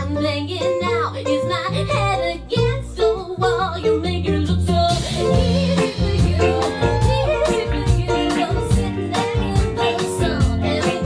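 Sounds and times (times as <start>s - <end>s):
live retro-pop band: 0.0s - 11.0s
woman singing: 0.0s - 11.0s
steady drum beat: 4.9s - 11.0s.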